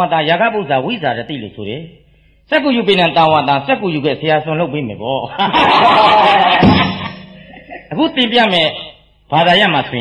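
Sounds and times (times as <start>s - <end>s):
group laughing: 5.3s - 8.0s.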